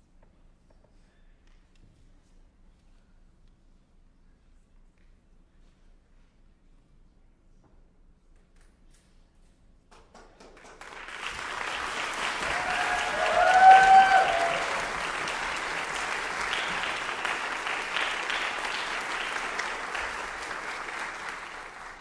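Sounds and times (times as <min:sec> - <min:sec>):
audience applauding: 0:10.3 - 0:22.0
high whoop from audience: 0:11.4 - 0:18.8.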